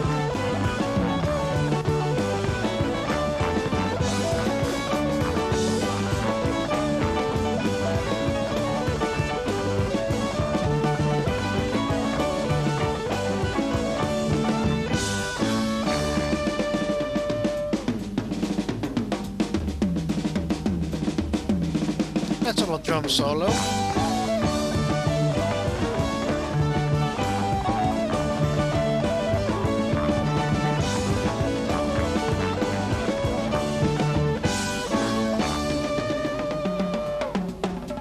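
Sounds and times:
fast drum solo: 0.0s - 38.0s
live rock band playing: 0.0s - 38.0s.

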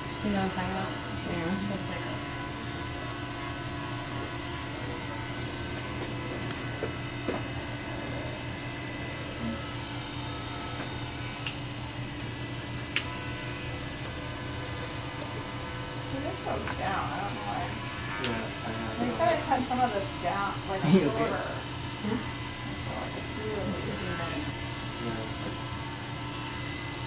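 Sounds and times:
electric hair clippers buzzing: 0.0s - 27.0s.

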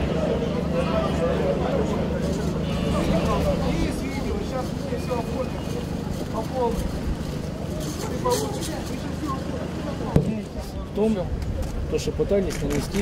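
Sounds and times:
bus engine idling: 0.0s - 11.2s
indistinct crowd voices: 0.0s - 13.0s.

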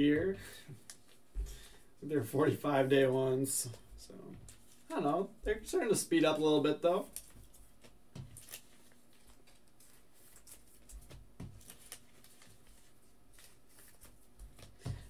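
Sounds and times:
room hum: 0.0s - 15.0s
trading cards clicking and rustling: 7.0s - 15.0s.

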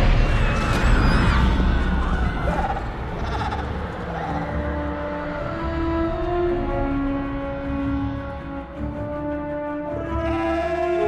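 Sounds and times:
music with long held notes: 3.6s - 11.0s.

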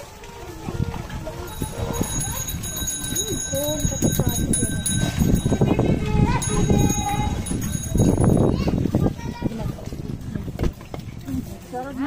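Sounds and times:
high metallic ringing: 1.5s - 8.8s.

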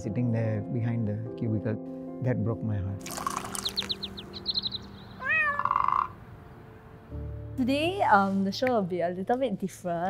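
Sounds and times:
high falling cartoon chirps: 3.4s - 6.1s
cartoon cat meow: 5.2s - 6.1s.

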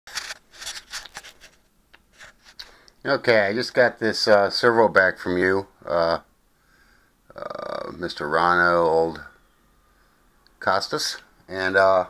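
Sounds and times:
short rustling: 0.1s - 2.8s.

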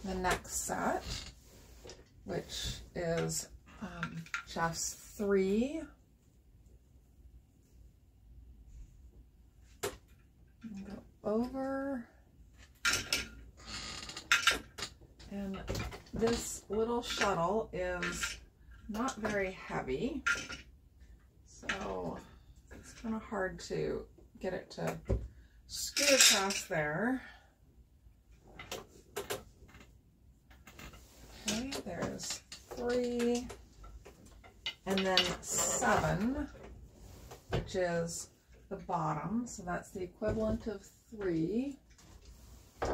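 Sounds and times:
faint room noise: 0.0s - 42.9s.

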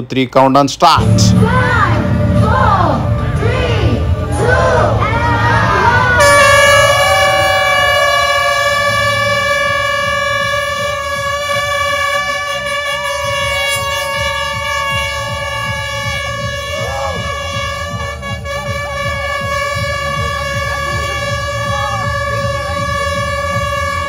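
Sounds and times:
crowd shouting and cheering: 1.0s - 24.0s
air horn long blast: 6.0s - 24.0s.

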